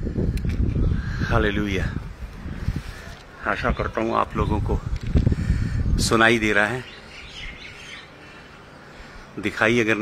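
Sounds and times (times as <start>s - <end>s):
low outdoor background: 0.0s - 10.0s
faint bird chirping: 6.6s - 9.3s.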